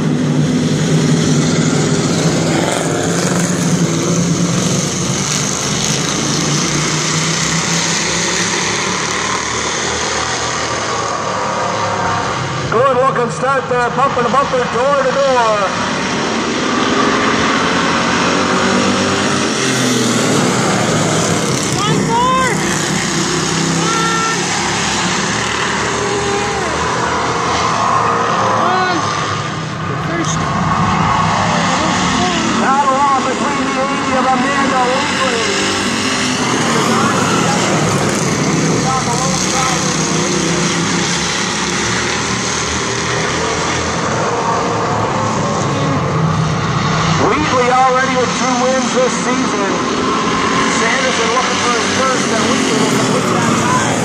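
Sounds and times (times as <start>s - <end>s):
race car engines droning: 0.0s - 54.0s
voices: 12.0s - 15.8s, 20.6s - 22.8s, 23.6s - 35.7s, 36.5s - 40.4s, 47.2s - 49.9s, 50.6s - 54.0s.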